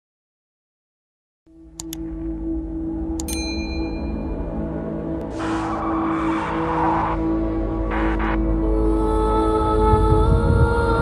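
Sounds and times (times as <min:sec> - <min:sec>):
low music drone: 0:01.5 - 0:11.0.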